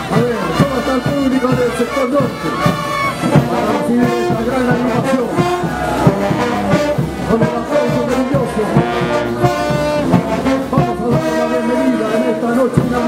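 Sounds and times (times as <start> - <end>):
brass band playing: 0.0 - 13.0.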